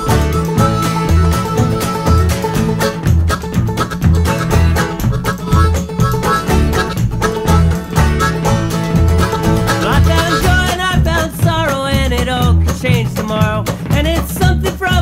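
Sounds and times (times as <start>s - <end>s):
acoustic guitar picking: 0.0s - 15.0s
plucked banjo: 0.0s - 15.0s
pulsing bass: 0.0s - 15.0s
sliding melody line: 0.0s - 15.0s.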